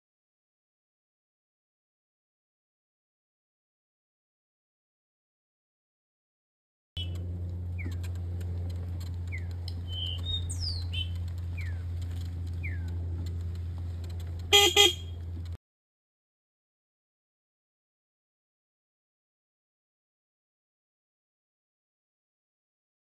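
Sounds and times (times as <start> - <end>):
birds chirping: 7.0 - 13.5, 14.5 - 15.2
steady low hum: 7.0 - 15.6
vehicle horn honks: 14.5 - 15.2.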